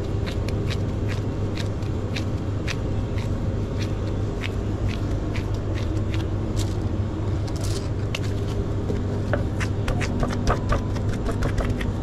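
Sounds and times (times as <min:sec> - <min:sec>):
low steady hum: 0:00.0 - 0:12.0
hands patting meat: 0:09.4 - 0:12.0.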